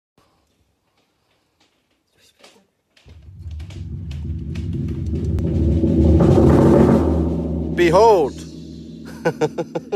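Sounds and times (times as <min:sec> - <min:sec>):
timpani roll: 0:03.1 - 0:09.9.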